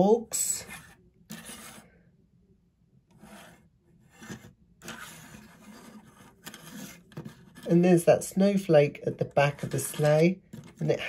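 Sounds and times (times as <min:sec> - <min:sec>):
plastic toy rubbing on tabletop: 0:00.6 - 0:01.9, 0:03.1 - 0:07.8.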